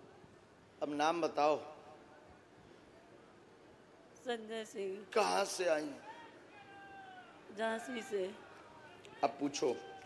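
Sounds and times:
woman speaking into microphone: 7.5s - 8.4s.

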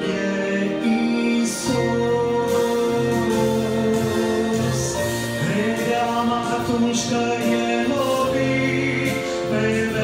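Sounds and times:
keyboard chords: 0.0s - 10.0s
man singing through microphone: 0.0s - 10.0s.

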